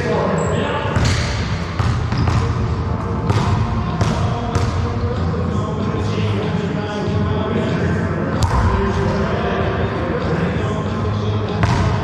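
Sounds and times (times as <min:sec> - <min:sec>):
steady background din: 0:00.0 - 0:12.0.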